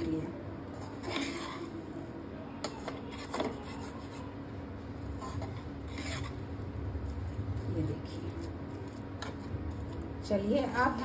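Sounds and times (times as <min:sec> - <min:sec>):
spatula scraping a pan: 0:00.7 - 0:01.9, 0:02.6 - 0:04.4, 0:05.0 - 0:10.0.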